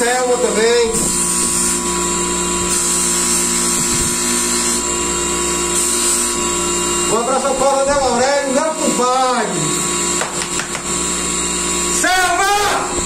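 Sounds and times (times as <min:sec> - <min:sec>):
electric motor humming with whine: 0:00.0 - 0:13.0.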